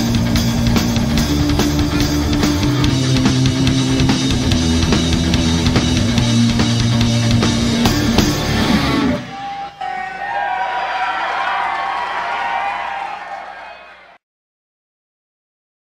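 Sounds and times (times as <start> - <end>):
reggae rock band playing: 0.0 - 11.1
crowd cheering: 8.0 - 14.2.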